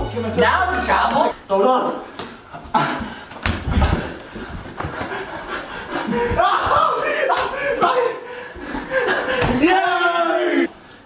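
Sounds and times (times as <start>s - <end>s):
players panting: 2.8s - 9.6s.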